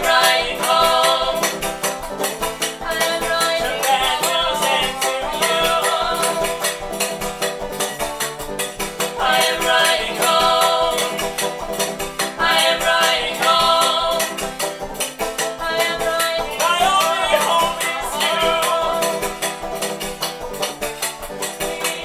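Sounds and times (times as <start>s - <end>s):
voices singing: 0.0s - 2.1s, 2.7s - 7.2s, 9.0s - 14.6s, 15.6s - 19.8s, 21.4s - 22.0s
picked banjo: 0.0s - 22.0s
washboard scraping rhythm: 0.0s - 22.0s.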